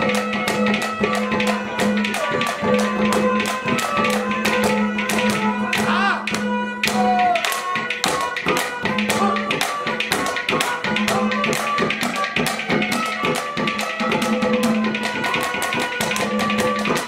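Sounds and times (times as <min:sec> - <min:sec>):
fast percussion clicks and taps: 0:00.0 - 0:17.0
harmonium holding notes: 0:00.0 - 0:17.0.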